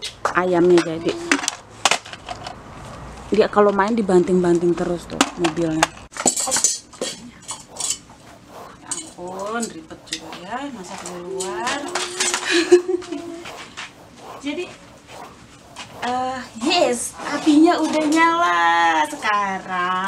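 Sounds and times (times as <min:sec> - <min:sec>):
wavering pitched tone: 0:07.4 - 0:19.6.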